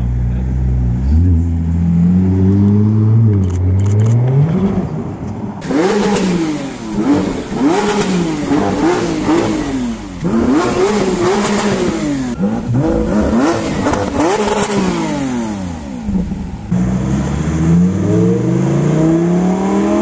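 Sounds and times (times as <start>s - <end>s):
car engine revving: 0.0s - 20.0s.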